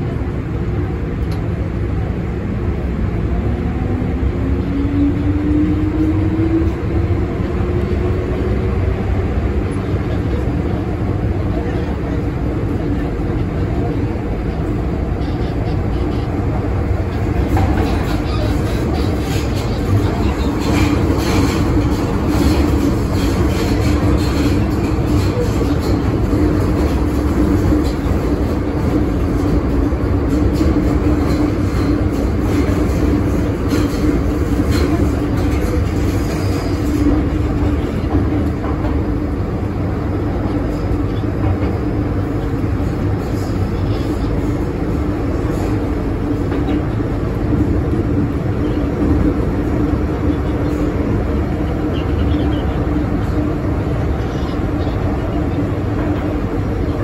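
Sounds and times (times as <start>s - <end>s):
train hum: 0.0s - 57.0s
wheels rumbling on rail: 0.0s - 57.0s.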